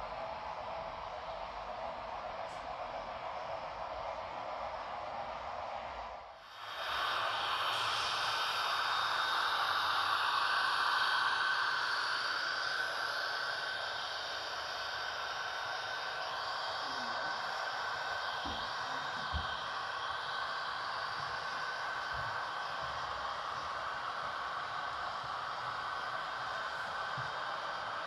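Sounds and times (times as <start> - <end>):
model train whirring past: 0.0 - 28.0.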